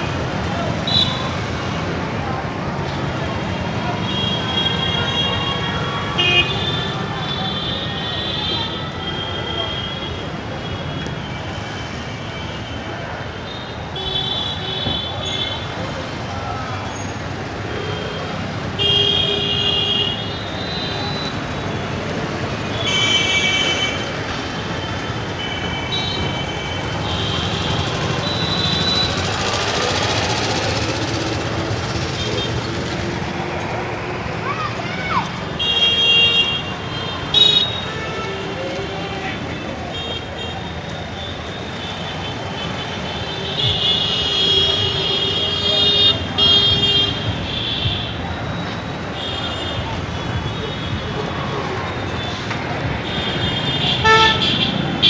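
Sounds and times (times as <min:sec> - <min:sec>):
city street traffic: 0:00.0 - 0:55.0
vehicle horn honks: 0:53.6 - 0:54.7.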